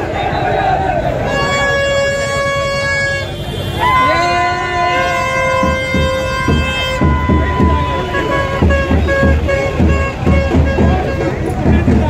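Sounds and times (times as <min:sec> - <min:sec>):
crowd shouting: 0:00.0 - 0:12.0
horns blasting on different notes: 0:00.0 - 0:12.0.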